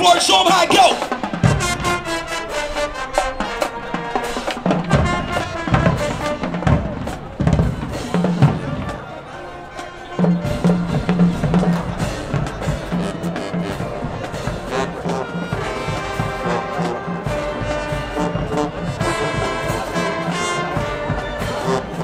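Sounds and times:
marching band playing: 0:00.0 - 0:22.0.

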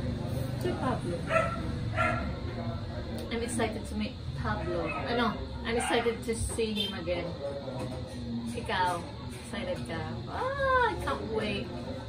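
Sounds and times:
dog barking: 0:01.3 - 0:02.4.

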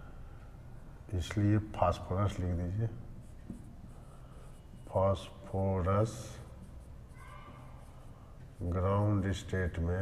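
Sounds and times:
marker pen scratching on whiteboard: 0:03.2 - 0:09.7.

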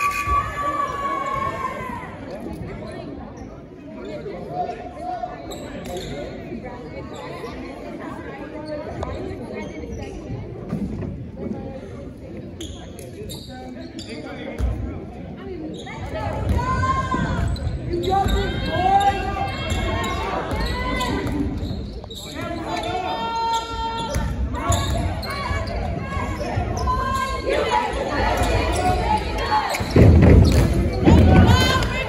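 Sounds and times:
sneakers squeaking: 0:05.5 - 0:07.7, 0:12.6 - 0:14.8, 0:15.5 - 0:32.0
people calling out: 0:31.0 - 0:32.0.

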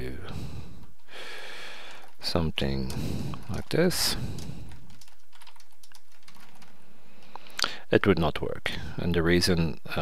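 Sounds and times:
computer keyboard typing: 0:02.8 - 0:07.3.

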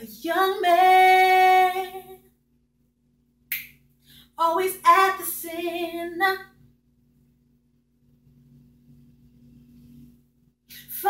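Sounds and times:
finger snap: 0:03.5 - 0:04.0.

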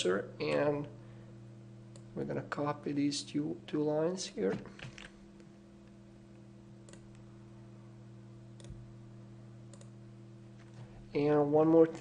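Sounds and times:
steady low hum: 0:00.0 - 0:12.0
computer mouse clicks: 0:06.9 - 0:07.2, 0:09.7 - 0:10.0.

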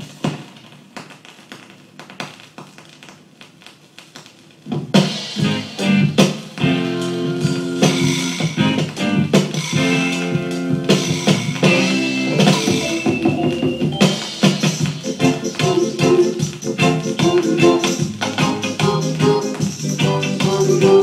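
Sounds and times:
roots reggae record playing: 0:04.2 - 0:21.0.

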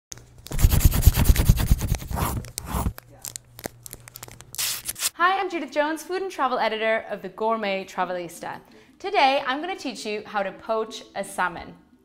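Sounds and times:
rapid scratchy strokes: 0:00.5 - 0:02.9.

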